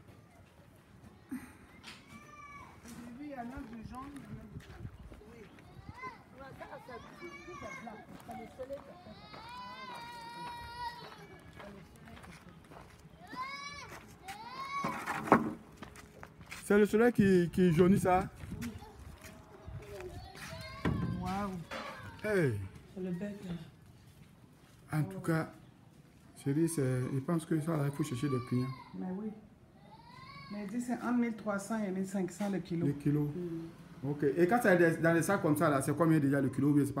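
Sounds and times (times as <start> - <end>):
faint background voices talking: 0.0 - 14.8, 15.7 - 31.2.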